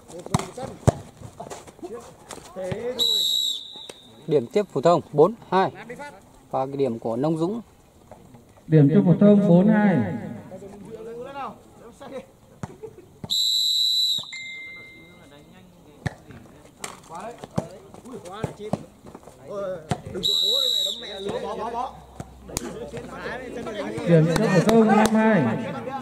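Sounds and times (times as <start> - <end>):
referee's whistle blasts: 3.0 - 4.3, 13.3 - 15.3, 20.2 - 21.6.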